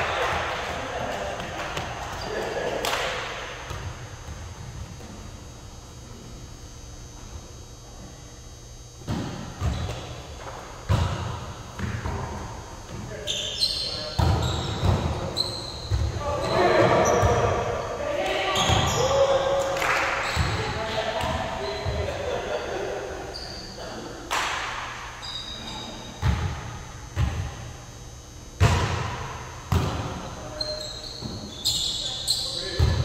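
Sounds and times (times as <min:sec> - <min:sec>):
players calling and chattering: 0:00.0 - 0:33.0.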